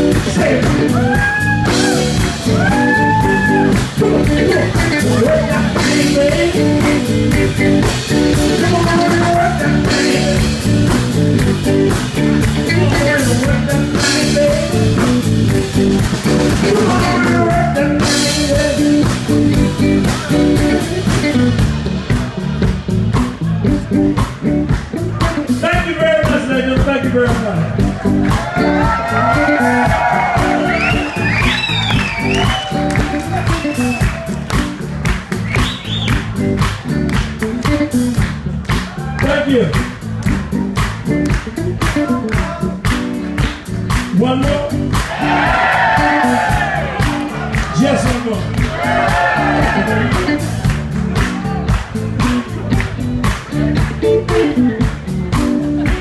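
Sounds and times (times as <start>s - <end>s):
electric guitar: 0.0s - 26.0s, 26.7s - 56.0s
bass guitar: 0.0s - 56.0s
drum kit steady beat: 0.0s - 56.0s.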